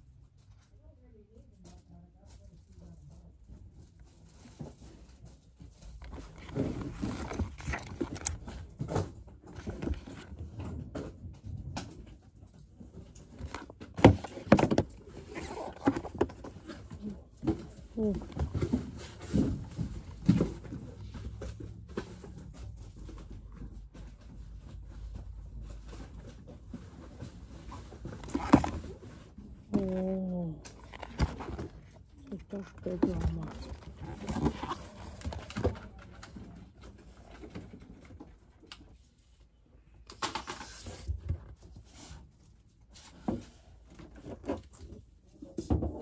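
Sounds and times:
rustling of handled items: 0.0s - 46.0s.

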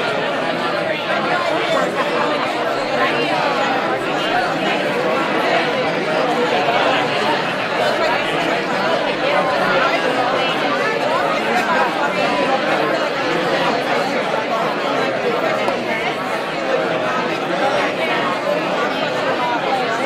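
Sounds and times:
crowd chatter: 0.0s - 20.0s.

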